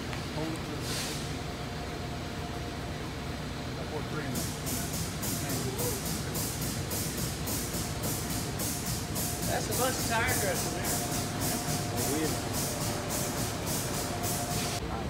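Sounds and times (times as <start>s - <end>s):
shop hum: 0.0s - 15.0s
air pump puffing: 4.3s - 14.8s.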